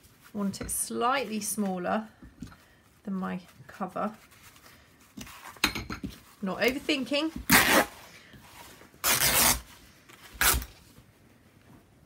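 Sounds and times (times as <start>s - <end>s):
fabric tearing: 7.5s - 8.0s, 9.0s - 9.7s, 10.4s - 10.8s.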